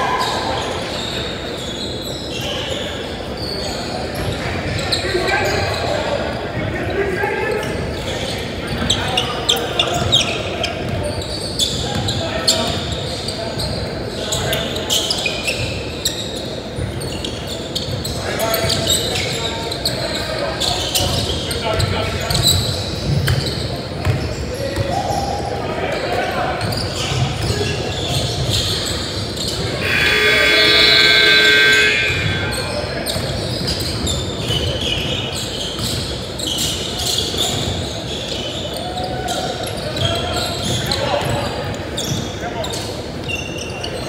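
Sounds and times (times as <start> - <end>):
players calling out: 29.8 - 33.3.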